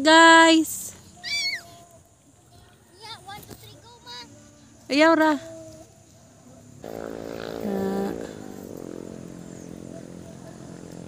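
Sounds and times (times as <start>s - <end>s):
child shouting: 1.2s - 1.8s.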